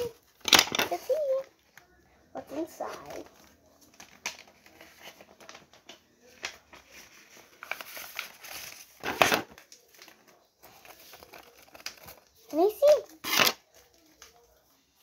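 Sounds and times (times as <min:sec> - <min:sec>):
paper rustling and crinkling: 0:02.5 - 0:15.0
scissors cutting paper: 0:13.2 - 0:13.6.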